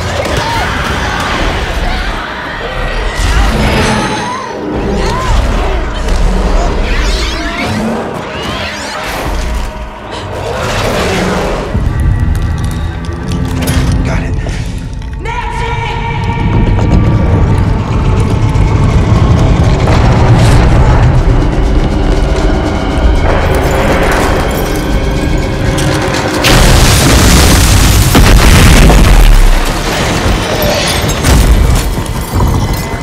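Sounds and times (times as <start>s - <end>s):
dramatic orchestral score: 0.0s - 33.0s
clicking and cracking effects: 11.6s - 15.2s
heavy low rumble: 16.0s - 30.6s
crash of smashing debris: 25.8s - 33.0s.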